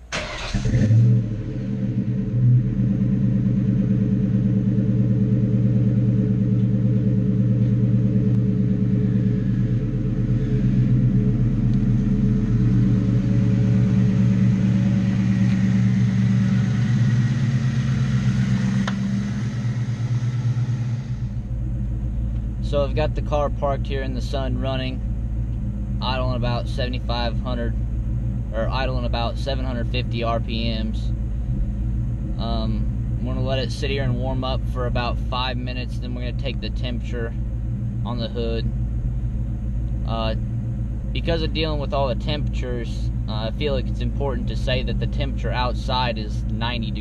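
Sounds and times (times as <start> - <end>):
car engine idling: 0.0 - 47.0.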